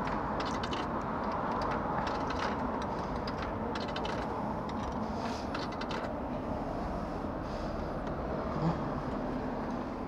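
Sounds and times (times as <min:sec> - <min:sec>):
street noise hum: 0:00.0 - 0:10.0.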